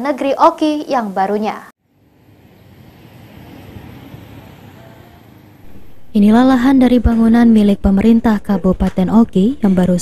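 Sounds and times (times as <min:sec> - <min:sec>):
road traffic rumble: 0:00.8 - 0:10.0.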